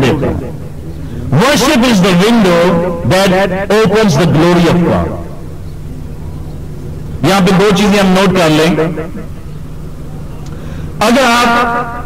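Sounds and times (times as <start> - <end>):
man speaking: 0.0 - 0.6, 1.3 - 5.4, 7.2 - 9.2, 11.0 - 12.0
low background hum: 0.0 - 12.0.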